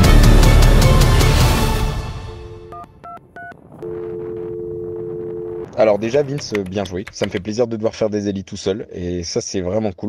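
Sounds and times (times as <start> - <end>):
telephone dial tone: 2.7 - 5.7.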